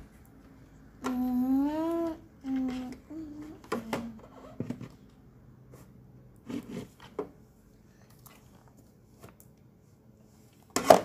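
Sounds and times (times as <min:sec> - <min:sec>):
person humming: 0:01.0 - 0:04.2.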